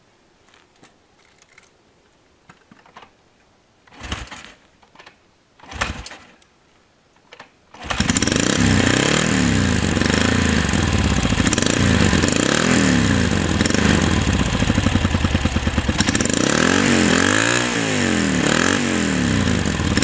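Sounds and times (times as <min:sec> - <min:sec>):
motorcycle engine kick-started: 0:03.9 - 0:06.4, 0:07.4 - 0:17.8.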